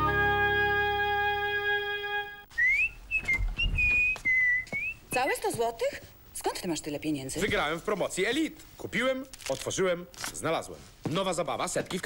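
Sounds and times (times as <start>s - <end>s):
person whistling a tune: 2.6s - 5.0s.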